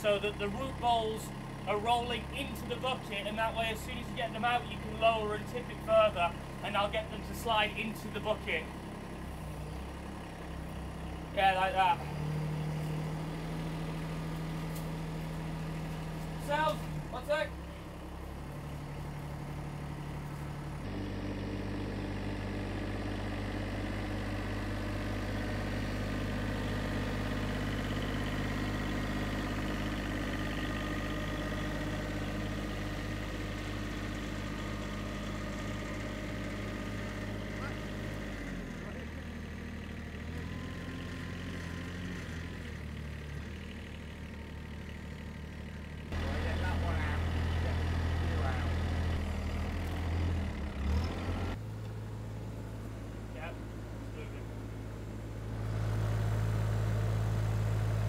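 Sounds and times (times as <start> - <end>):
tractor engine idling: 0.0 - 58.0.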